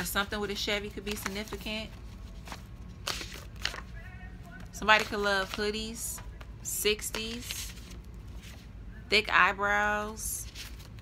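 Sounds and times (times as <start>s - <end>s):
paper cards rustling and scraping: 0.0s - 8.8s, 10.3s - 11.0s
low steady hum: 0.0s - 11.0s.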